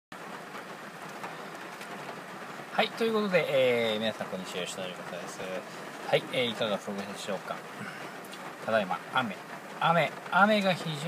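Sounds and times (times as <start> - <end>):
heavy rain on a car: 0.1 - 11.0
raindrops ticking: 0.2 - 11.0.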